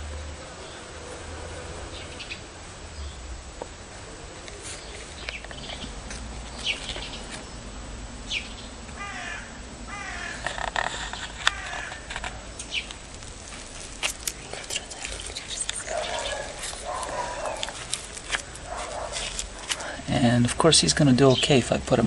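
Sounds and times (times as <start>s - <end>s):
birds chirping: 0.4s - 3.3s, 4.0s - 22.0s
low wavering bird calls: 4.1s - 13.0s, 14.4s - 20.0s.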